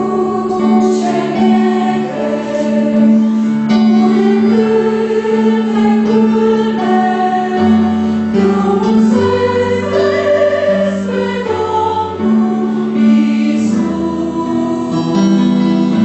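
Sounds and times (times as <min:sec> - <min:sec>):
mixed choir singing a hymn: 0:00.0 - 0:16.0.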